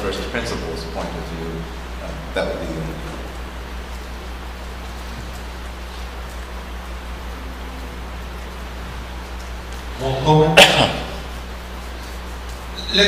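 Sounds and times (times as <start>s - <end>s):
even hiss: 0.0s - 13.0s
low electrical hum: 0.0s - 13.0s.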